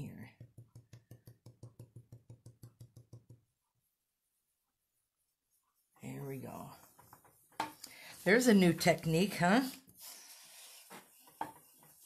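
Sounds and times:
brush tapping on cardstock: 0:00.3 - 0:03.6.

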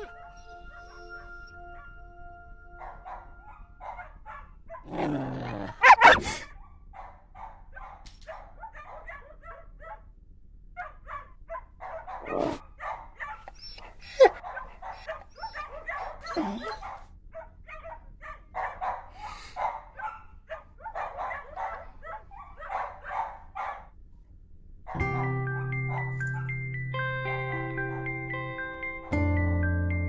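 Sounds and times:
puppy yelp: 0:02.8 - 0:06.4, 0:10.8 - 0:17.0
puppy barking and whimpering: 0:02.8 - 0:06.5, 0:12.0 - 0:17.0.

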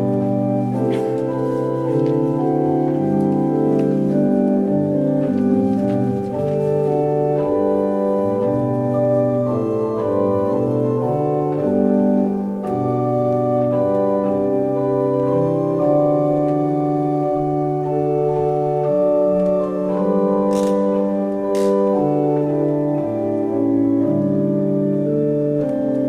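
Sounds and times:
pipe organ chords: 0:00.0 - 0:26.0.

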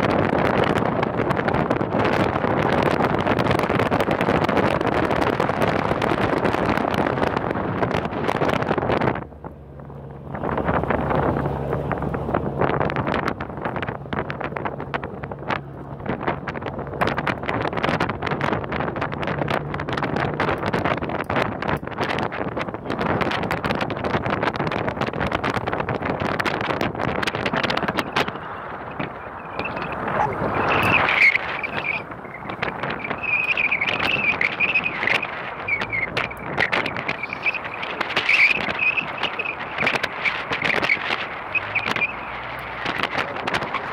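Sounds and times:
boat engine humming: 0:00.0 - 0:43.9
wind buffeting microphone: 0:00.0 - 0:43.9.

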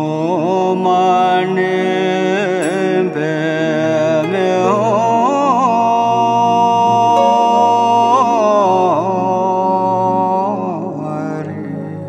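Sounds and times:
voice chanting a mantra: 0:00.0 - 0:12.0
sustained backing tones: 0:00.1 - 0:12.0.

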